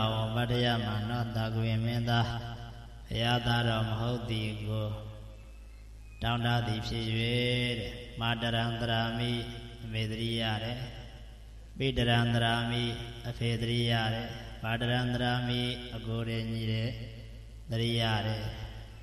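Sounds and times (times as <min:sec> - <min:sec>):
man chanting into a microphone: 0:00.0 - 0:05.4, 0:06.2 - 0:19.0.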